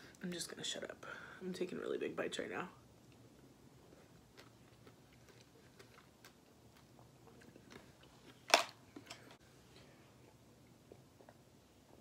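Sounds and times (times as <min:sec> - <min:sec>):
person chewing: 0:03.8 - 0:08.3.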